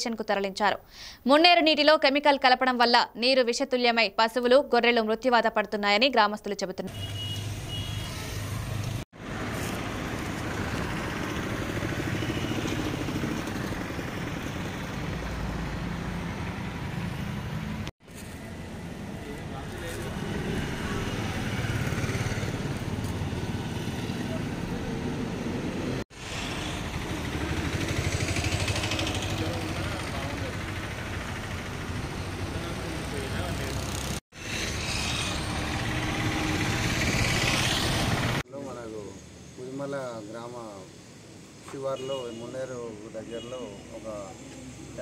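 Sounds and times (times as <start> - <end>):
outdoor background noise: 0.0 - 45.0
vehicle engine running: 8.7 - 34.2, 35.1 - 38.4.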